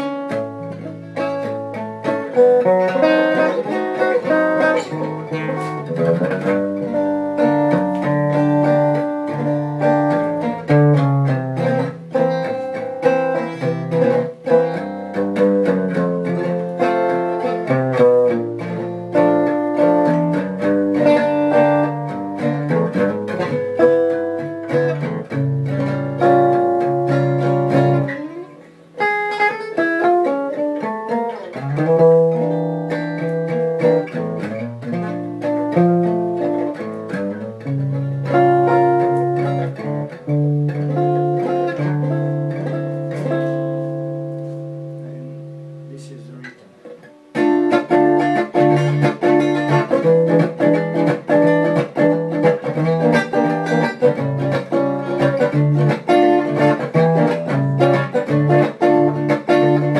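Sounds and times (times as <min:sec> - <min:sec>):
amplified acoustic guitar playing: 0:00.0 - 0:59.9.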